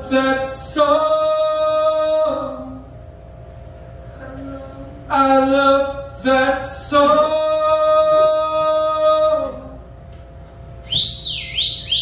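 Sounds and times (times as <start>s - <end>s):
man singing a long note: 0.0s - 2.9s, 5.0s - 9.8s
high whistle sliding in pitch: 10.8s - 12.0s.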